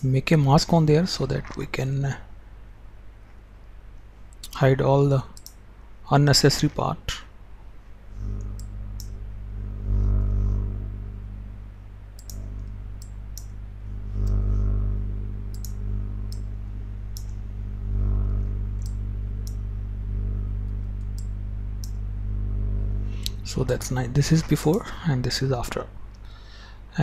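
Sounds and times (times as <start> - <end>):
low hum: 6.6 - 27.0.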